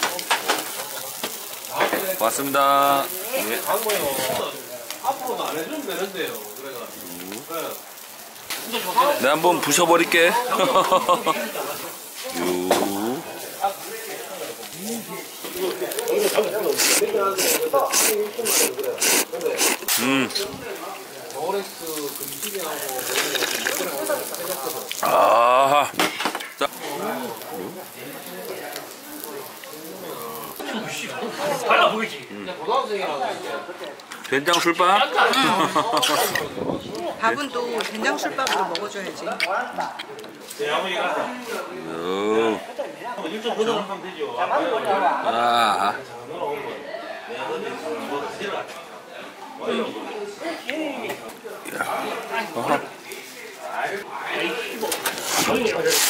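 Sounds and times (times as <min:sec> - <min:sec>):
meat sizzling on grill: 0:00.0 - 0:46.0, 0:50.8 - 0:56.0
indistinct restaurant chatter: 0:00.0 - 0:56.0.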